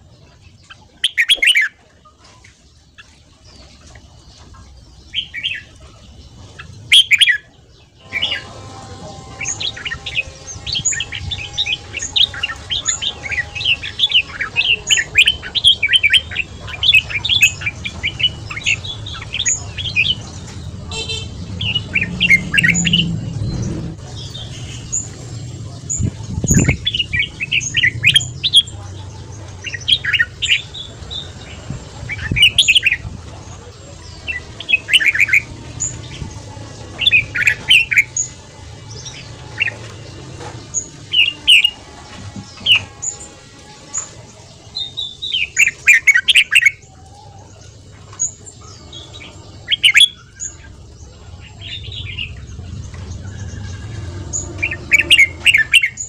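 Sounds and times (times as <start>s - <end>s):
low background rumble: 3.4s - 45.5s, 46.8s - 56.0s
bird warbling: 8.0s - 40.0s, 48.2s - 56.0s.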